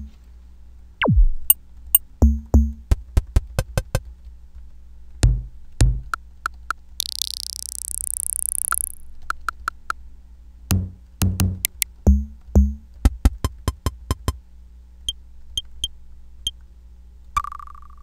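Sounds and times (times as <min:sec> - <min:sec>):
sharp ticks and clicks: 0:06.1 - 0:10.0, 0:11.2 - 0:12.1.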